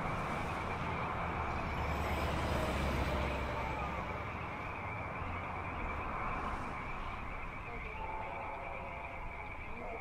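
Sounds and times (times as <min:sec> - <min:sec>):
vehicle passing rumble: 0:00.0 - 0:09.7.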